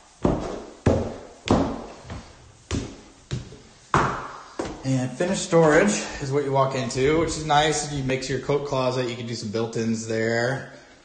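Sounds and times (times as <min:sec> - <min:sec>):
footsteps on hard stairs: 0:00.1 - 0:05.0.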